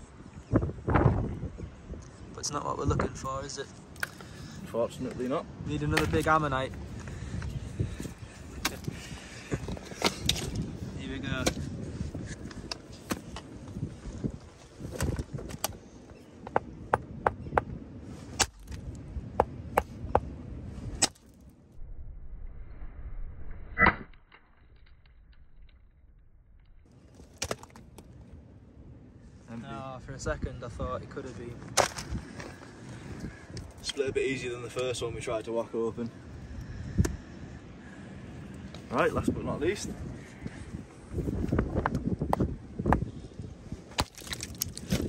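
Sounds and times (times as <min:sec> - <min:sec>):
hammer striking rock: 0:19.4 - 0:20.3.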